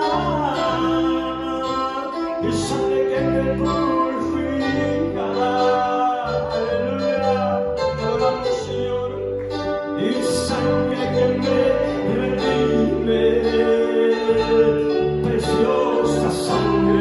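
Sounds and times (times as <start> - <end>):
man singing into microphone: 0.0 - 9.4, 10.0 - 17.0
bass line: 0.0 - 17.0
electric keyboard: 0.0 - 17.0
guitar: 0.0 - 17.0.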